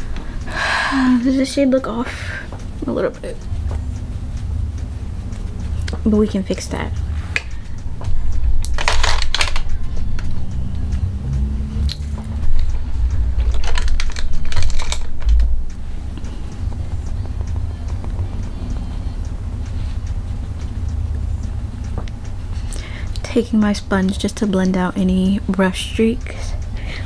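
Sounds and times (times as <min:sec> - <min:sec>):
steady low rumble: 0:00.0 - 0:27.0
makeup items clattering and rustling: 0:08.7 - 0:09.7.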